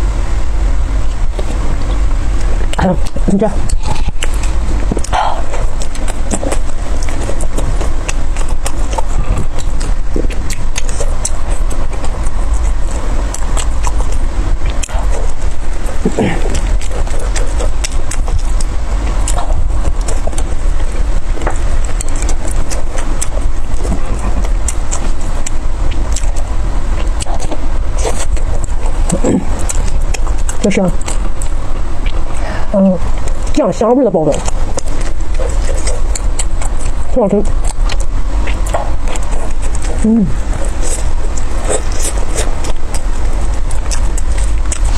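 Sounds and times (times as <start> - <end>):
steady low rumble: 0.0 - 44.9
person chewing with mouth smacks: 1.0 - 33.6, 34.2 - 44.9.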